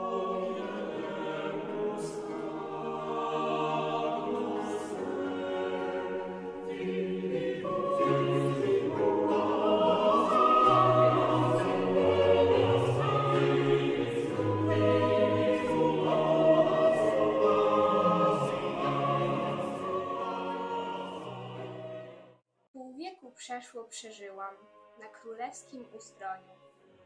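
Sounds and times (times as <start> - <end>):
choir singing long chords: 0.0 - 22.4.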